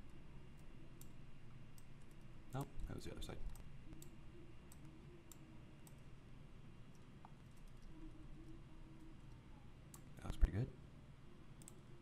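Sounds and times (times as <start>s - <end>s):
computer mouse and keyboard clicks: 11.6s - 11.8s.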